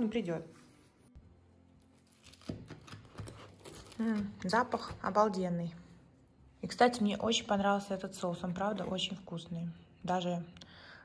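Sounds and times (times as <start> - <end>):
knife cutting pizza crust: 2.0 - 5.2.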